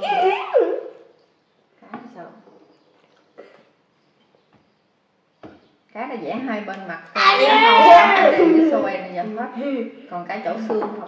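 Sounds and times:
child's whining squeal: 0.0s - 1.0s, 7.2s - 8.7s.

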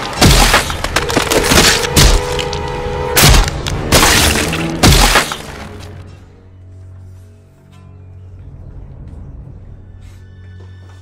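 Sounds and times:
hard cracking impacts: 0.0s - 2.6s, 3.2s - 5.7s.

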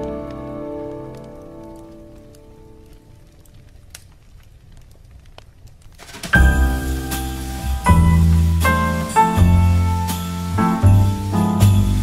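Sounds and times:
wood fire crackling and popping: 0.0s - 12.0s
jazz instrumental: 6.1s - 12.0s.

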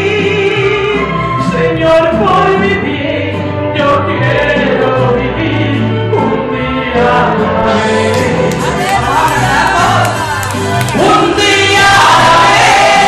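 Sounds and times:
musical accompaniment with bass: 0.0s - 13.0s.

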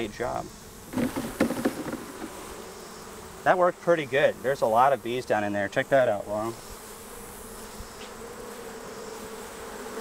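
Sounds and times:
honeybees buzzing: 0.0s - 10.0s
sharp knock: 0.9s - 2.4s.

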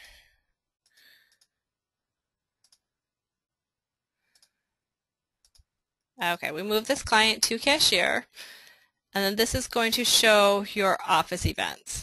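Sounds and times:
computer mouse clicks: 0.8s - 1.5s, 2.6s - 2.9s, 4.3s - 4.6s, 5.4s - 5.7s.

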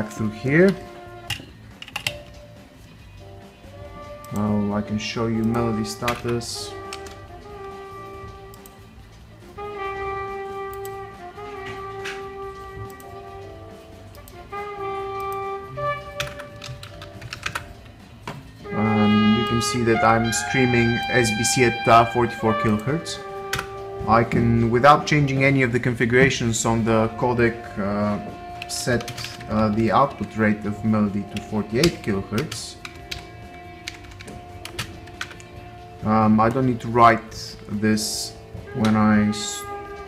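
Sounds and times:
song with long held notes: 3.2s - 40.0s
song from small speaker: 18.6s - 24.6s.

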